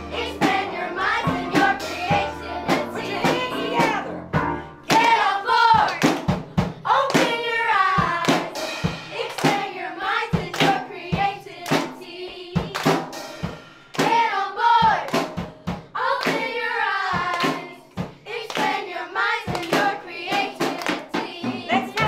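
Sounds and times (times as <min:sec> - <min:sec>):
children singing: 0:00.0 - 0:04.2, 0:04.9 - 0:06.1, 0:06.9 - 0:13.0, 0:16.0 - 0:22.0
children clapping hands: 0:17.3 - 0:17.6, 0:18.4 - 0:18.8, 0:19.5 - 0:19.9, 0:20.7 - 0:21.1.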